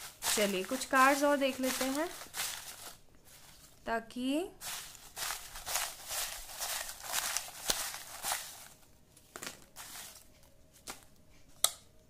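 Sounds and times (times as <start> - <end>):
paper slips rustling in a bowl: 0.0 - 3.8, 4.6 - 8.8, 9.4 - 10.3.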